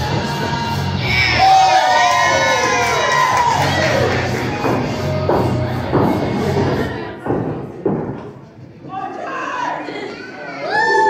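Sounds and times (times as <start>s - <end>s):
crowd cheering and shouting: 0.0s - 5.4s, 9.2s - 11.0s.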